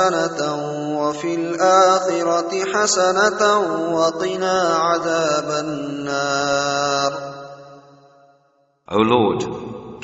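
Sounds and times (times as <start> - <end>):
solo voice chanting: 8.9 - 9.6.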